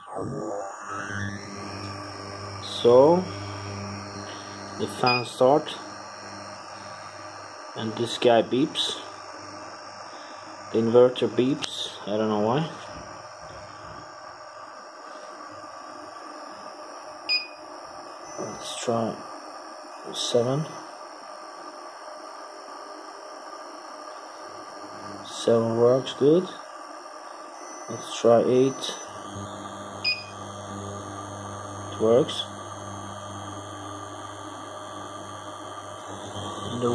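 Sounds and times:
cooling fan whirring: 0.0 - 36.9
electrical hum: 0.0 - 36.9
high electronic tones: 0.8 - 8.0, 18.2 - 19.2, 27.5 - 36.9.

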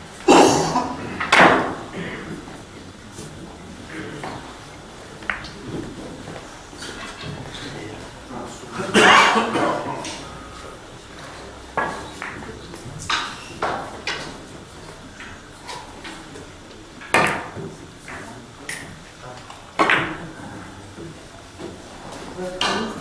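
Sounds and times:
billiard balls clicking: 5.2 - 7.6, 11.7 - 14.4.

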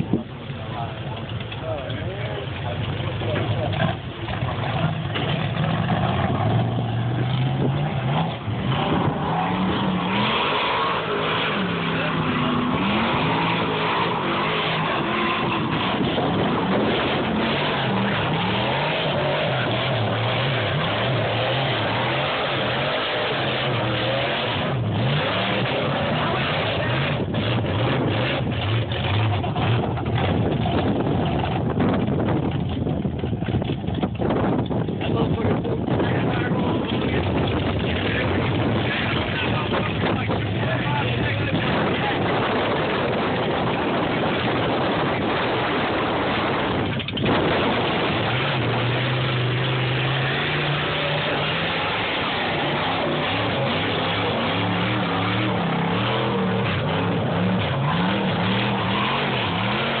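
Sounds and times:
truck engines revving: 0.0 - 60.0.

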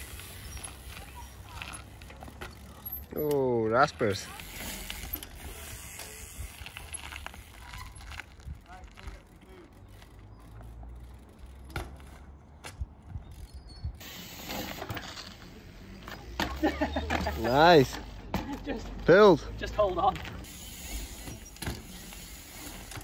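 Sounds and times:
bike freewheel hub clicking: 4.2 - 12.2.

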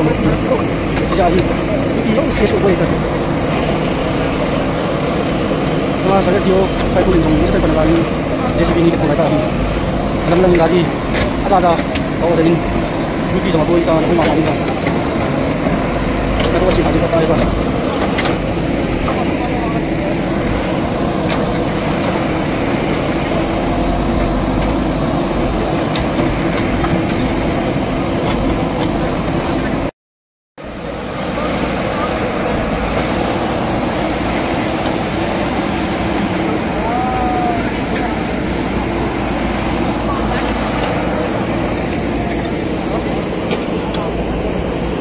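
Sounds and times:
backhoe digging mud: 0.0 - 29.9, 30.8 - 45.0
crowd talking: 0.0 - 29.9, 30.6 - 45.0
diesel engine running: 0.0 - 29.9, 30.6 - 45.0.

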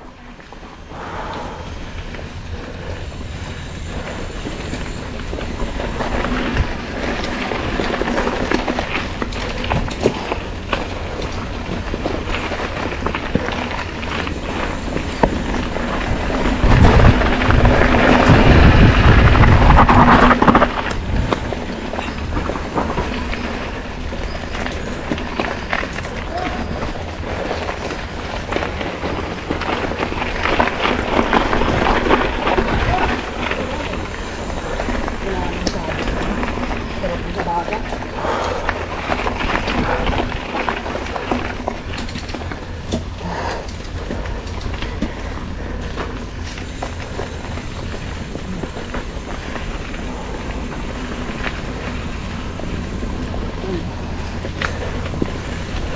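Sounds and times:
bike rattling over bumps: 0.0 - 55.9
bike tyre noise on dirt: 0.0 - 55.9
wind rumbling on microphone: 0.0 - 55.9.

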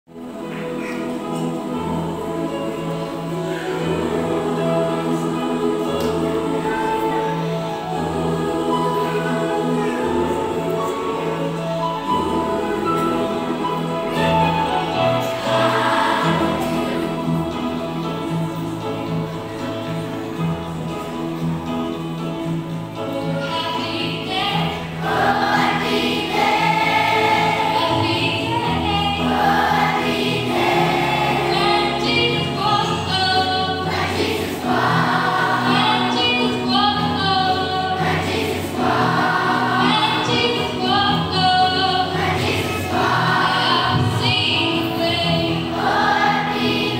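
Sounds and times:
children's choir singing: 0.1 - 46.9
instrumental accompaniment: 0.1 - 46.9.

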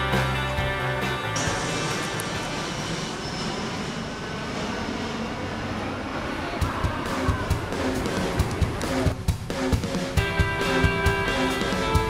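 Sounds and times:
aircraft engine noise: 0.0 - 12.0.

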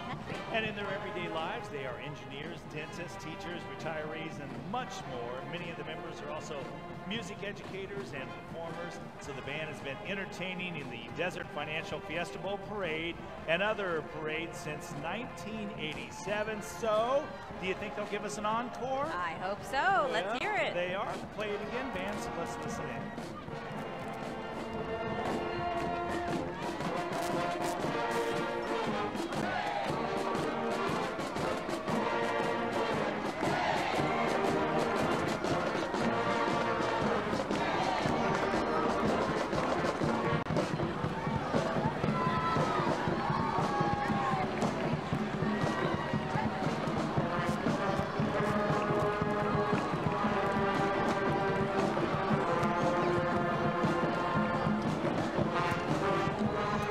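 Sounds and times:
marching band playing: 0.0 - 56.9
steady drumbeat: 18.4 - 56.9.

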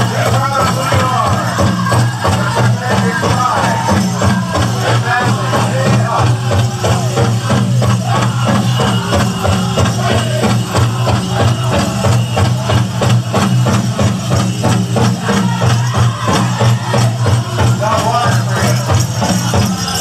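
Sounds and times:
people singing: 0.0 - 14.1, 15.0 - 20.0
jingling bells and rattles: 0.0 - 20.0
large drum beating: 0.0 - 20.0.

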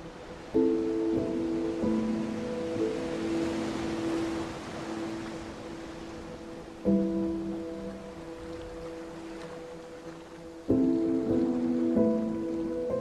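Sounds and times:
soft sustained music chords: 0.0 - 13.0
steady hiss: 0.0 - 13.0.

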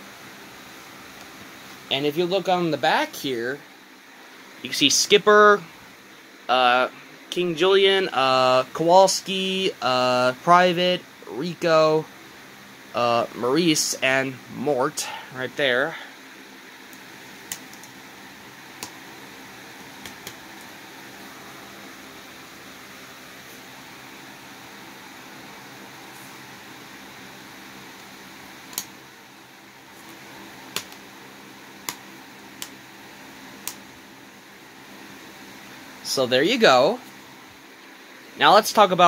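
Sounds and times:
fan hum and hiss: 0.0 - 39.0
small sharp clicks and taps: 16.9 - 18.0, 30.7 - 31.0, 31.8 - 32.0.

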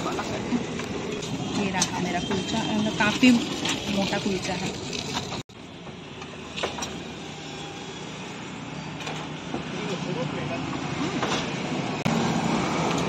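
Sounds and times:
roadside traffic: 0.0 - 13.0.

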